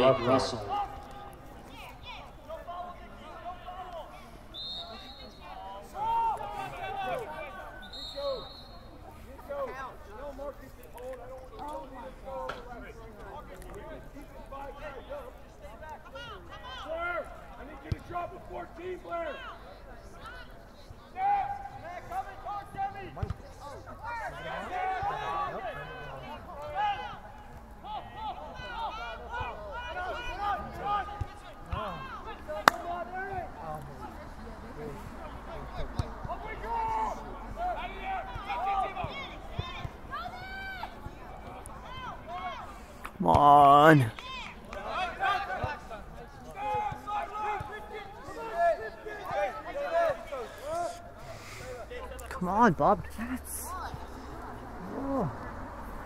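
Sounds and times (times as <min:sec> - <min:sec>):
people shouting and calling: 0:24.0 - 0:33.4, 0:36.3 - 0:51.1.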